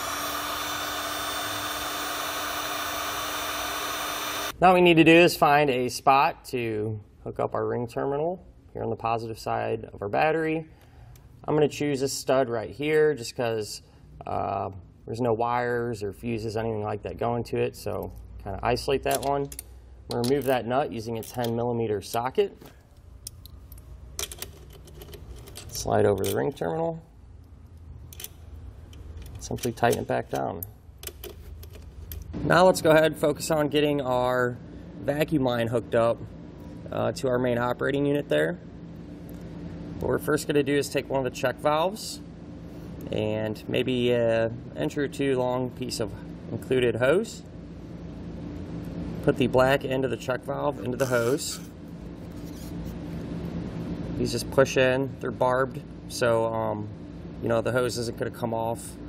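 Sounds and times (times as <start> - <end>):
heat gun blowing air: 0.0 - 4.6
low steady hum: 0.0 - 59.0.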